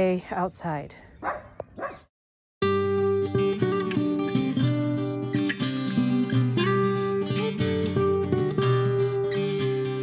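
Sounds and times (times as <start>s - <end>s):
dog yipping: 1.2s - 2.1s
acoustic guitar music: 2.6s - 10.0s.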